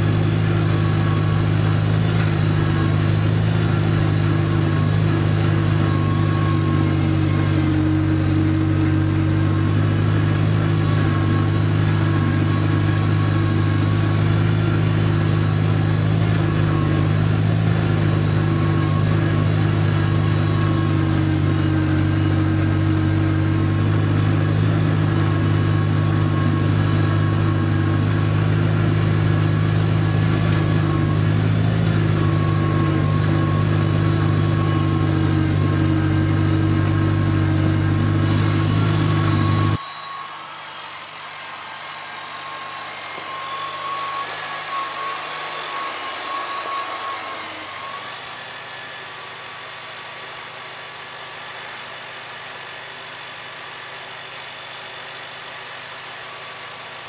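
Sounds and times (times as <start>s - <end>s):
tractor engine running: 0.0s - 39.8s.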